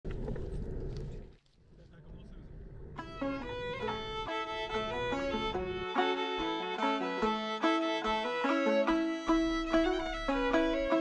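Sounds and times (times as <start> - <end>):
wind rumble on microphone: 0.0 - 6.0.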